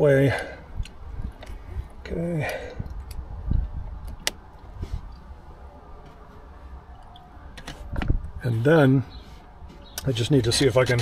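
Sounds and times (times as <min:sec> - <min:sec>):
light plastic clicks: 0:02.4 - 0:05.3.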